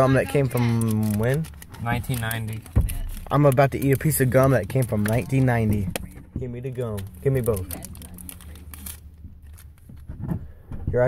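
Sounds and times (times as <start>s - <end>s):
gum wrapper crinkling and tearing: 0.0s - 10.0s.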